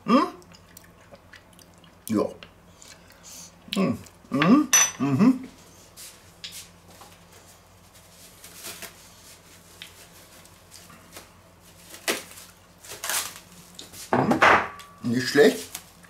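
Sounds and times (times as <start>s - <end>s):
man's approving hm: 3.8s - 5.6s.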